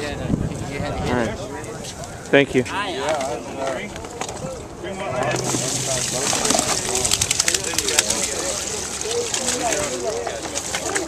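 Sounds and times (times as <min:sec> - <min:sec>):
crowd chatter: 0:00.0 - 0:11.0
water splashing into plastic basket: 0:05.4 - 0:11.0.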